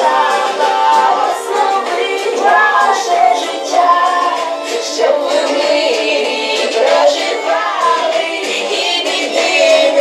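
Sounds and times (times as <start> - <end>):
children singing into toy microphones: 0.0 - 10.0.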